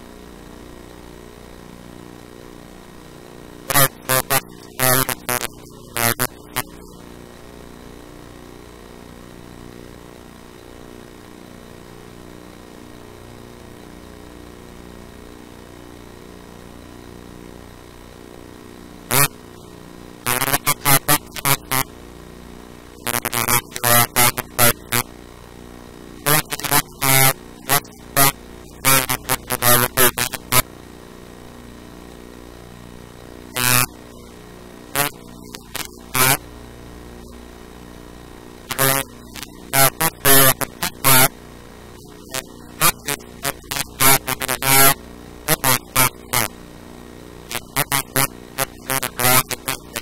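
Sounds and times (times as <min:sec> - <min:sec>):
steady machine hum: 0:00.0 - 0:50.0
harsh loud bursts: 0:20.3 - 0:21.9, 0:23.0 - 0:25.1, 0:26.2 - 0:30.6, 0:33.6 - 0:33.9, 0:35.0 - 0:36.4, 0:42.0 - 0:46.5, 0:47.5 - 0:50.0.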